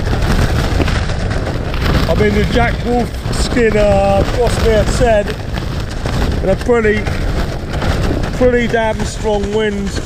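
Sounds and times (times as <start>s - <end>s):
storm wind battering tent: 0.0s - 10.0s.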